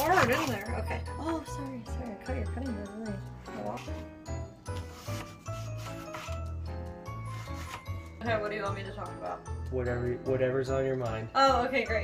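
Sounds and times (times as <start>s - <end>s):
blade scraping wooden board: 4.8s - 6.4s, 7.3s - 7.9s.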